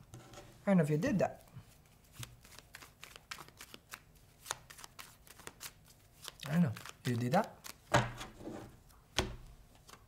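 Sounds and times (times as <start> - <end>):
cards being shuffled: 2.0 - 8.2.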